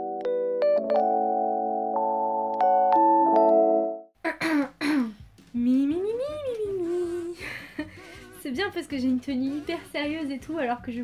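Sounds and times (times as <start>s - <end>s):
woman humming: 4.2s - 8.7s
woman vocal sounds: 4.2s - 10.4s.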